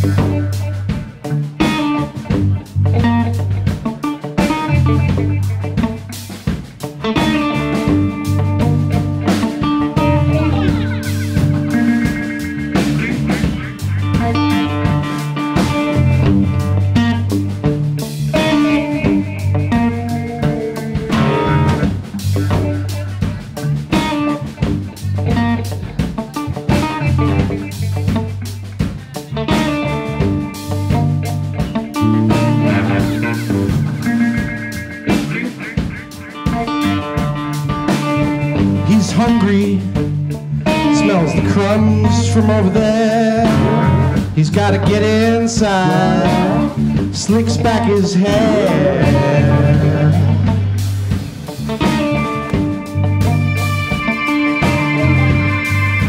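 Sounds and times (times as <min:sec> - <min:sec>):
drum kit beat: 0:00.0 - 0:56.0
electric bass figure: 0:00.0 - 0:56.0
electric guitar lines: 0:00.0 - 0:56.0.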